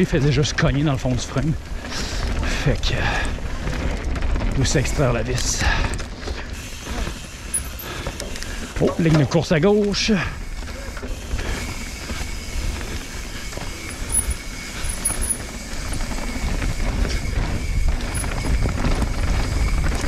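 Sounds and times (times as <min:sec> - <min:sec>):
bike tyres on dirt: 0:00.0 - 0:20.0
wind rumble on microphone: 0:11.4 - 0:20.0.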